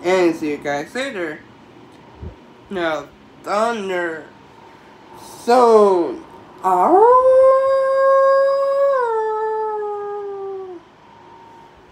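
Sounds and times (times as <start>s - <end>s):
man imitating wolf howl: 6.6s - 10.9s.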